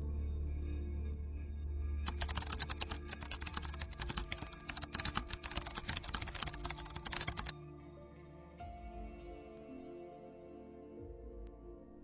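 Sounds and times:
soft background music: 0.0s - 12.0s
keyboard typing: 2.0s - 7.5s.

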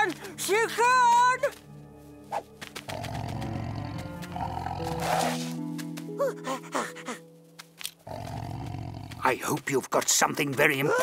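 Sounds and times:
background music: 0.0s - 11.0s
tiger growling: 2.9s - 5.6s, 8.0s - 9.3s.

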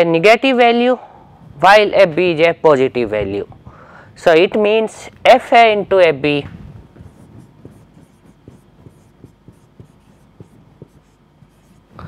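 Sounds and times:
marker pen writing on whiteboard: 6.7s - 12.0s.

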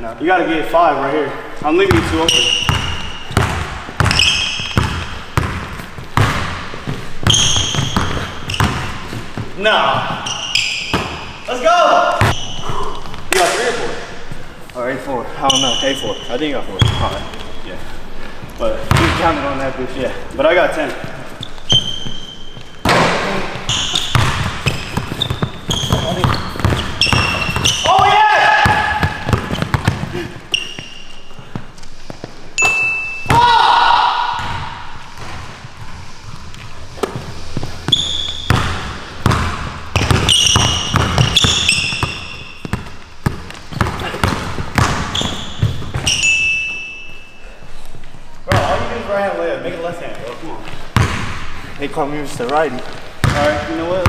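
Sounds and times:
sneakers squeaking: 0.9s - 19.6s, 20.7s - 49.2s, 49.9s - 54.0s
basketball bouncing on hardwood: 1.9s - 9.0s, 24.0s - 28.0s, 28.6s - 30.1s, 37.9s - 46.2s, 53.2s - 53.5s.

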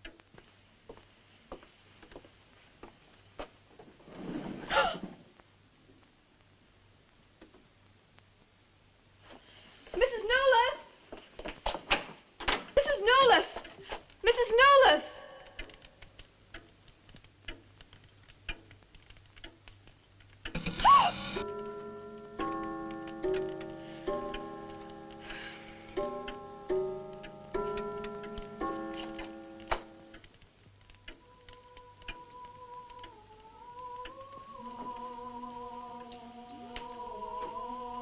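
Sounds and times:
clock ticking: 15.4s - 33.2s
slow eerie melody: 21.3s - 30.2s, 31.2s - 38.0s.

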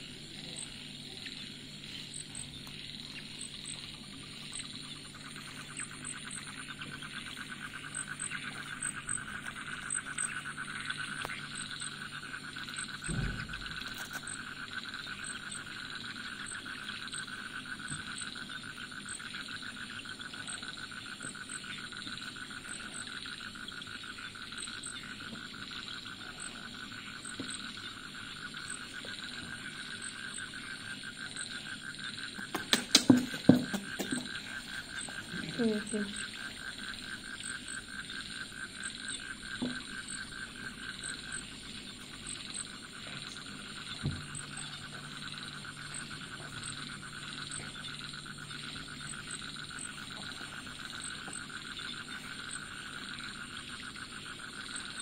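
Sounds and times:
frogs trilling: 0.0s - 55.0s.

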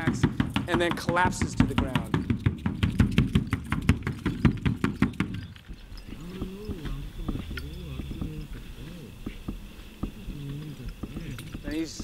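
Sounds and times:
low wavering voice: 6.1s - 9.4s, 10.1s - 12.0s.

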